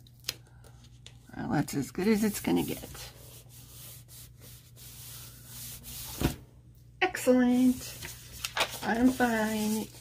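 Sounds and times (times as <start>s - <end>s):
hands brushing paper pages: 2.0s - 6.4s, 7.5s - 10.0s.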